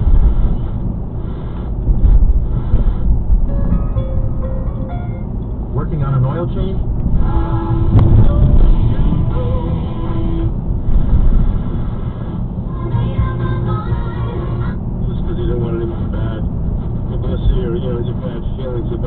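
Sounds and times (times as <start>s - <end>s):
road and engine rumble: 0.0s - 19.0s
car radio music with voice: 12.8s - 19.0s.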